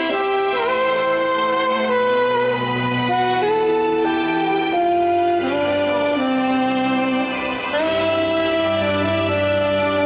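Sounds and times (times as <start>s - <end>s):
alto saxophone melody: 0.0s - 10.0s.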